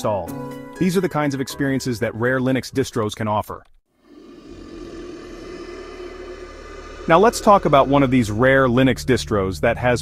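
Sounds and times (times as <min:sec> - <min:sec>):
deep rumbling fiery rush: 0:04.1 - 0:08.9.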